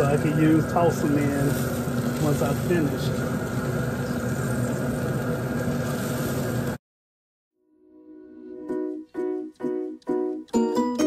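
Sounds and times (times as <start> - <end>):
machine humming: 0.0 - 6.8
music: 7.6 - 11.0.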